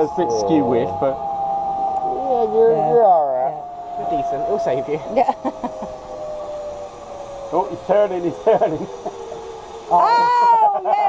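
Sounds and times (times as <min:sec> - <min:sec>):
zip line trolley whine: 0:00.0 - 0:11.0.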